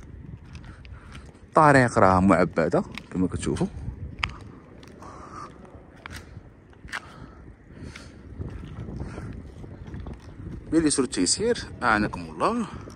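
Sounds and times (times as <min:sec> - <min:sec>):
faint footsteps: 0:00.0 - 0:12.9
wind rumble on microphone: 0:00.0 - 0:12.9.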